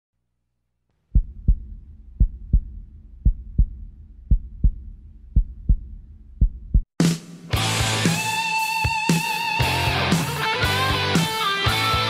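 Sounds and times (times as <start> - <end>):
heartbeat thumps: 1.1 - 7.0.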